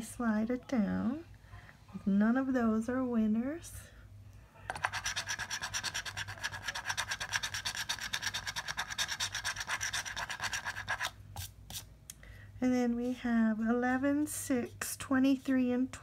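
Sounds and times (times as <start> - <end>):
coin scratching lottery ticket: 4.7 - 11.1.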